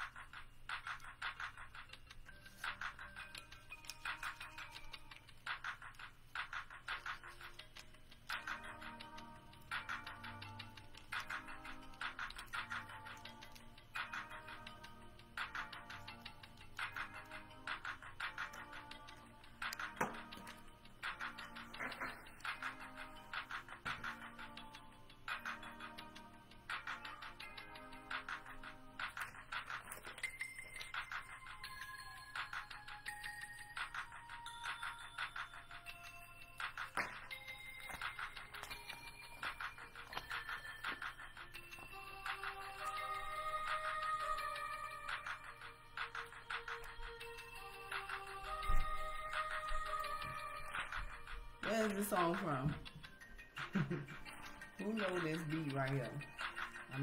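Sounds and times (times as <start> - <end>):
telephone hold music: 0.0 - 57.0.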